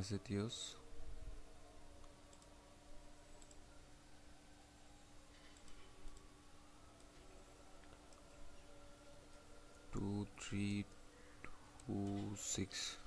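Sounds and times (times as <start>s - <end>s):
low electrical hum: 0.0s - 13.0s
computer mouse clicks: 2.0s - 2.5s, 3.3s - 3.6s, 5.4s - 6.3s, 7.8s - 8.4s.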